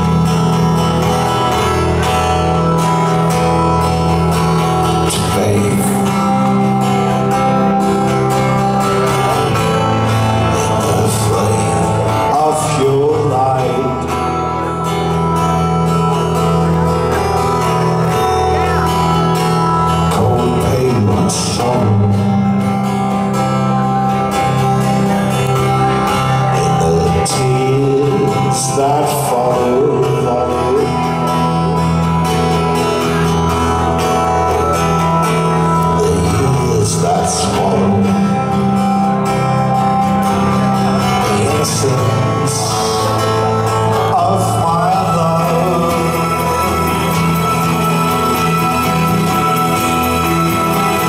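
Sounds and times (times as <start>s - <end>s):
electric guitar: 0.0s - 51.0s
held keyboard chords: 0.0s - 51.0s
man singing: 0.0s - 51.0s
strummed acoustic guitar: 0.0s - 51.0s.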